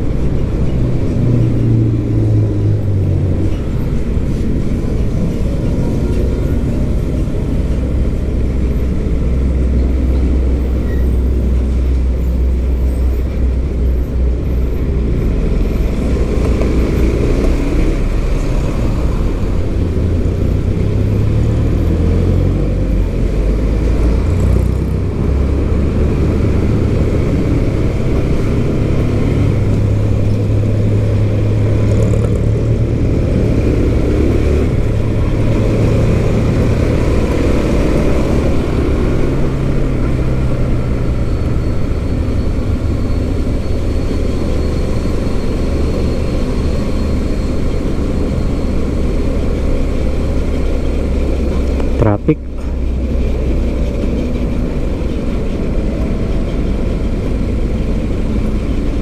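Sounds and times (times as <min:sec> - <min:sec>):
wind and road noise: 0:00.0 - 0:59.0.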